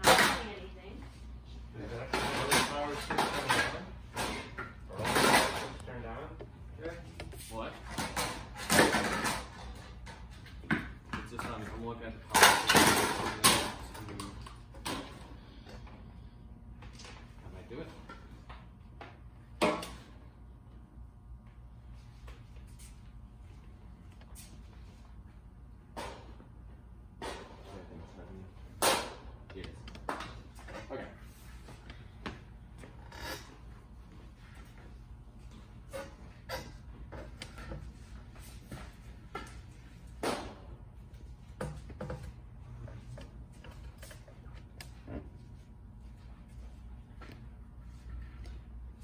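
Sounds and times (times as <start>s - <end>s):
objects knocking and clattering: 2.0s - 11.7s, 12.3s - 15.2s, 41.4s - 45.4s.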